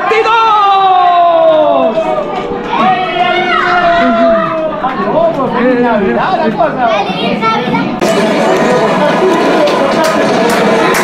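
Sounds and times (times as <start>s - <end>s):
family shouting excitedly: 0.0s - 4.9s.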